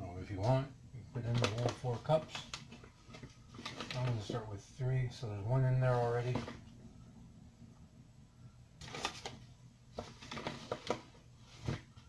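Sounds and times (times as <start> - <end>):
low steady hum: 0.0 - 12.0
paper bag rustling: 1.2 - 4.5, 8.8 - 12.0.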